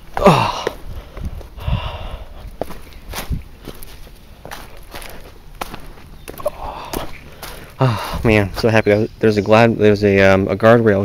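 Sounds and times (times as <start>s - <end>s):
footsteps crunching on leaves: 0.0s - 8.9s.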